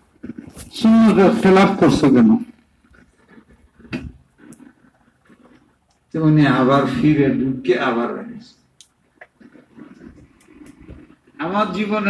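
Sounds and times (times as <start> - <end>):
man speaking forcefully: 0.8 - 2.4, 6.2 - 8.5, 11.4 - 12.0.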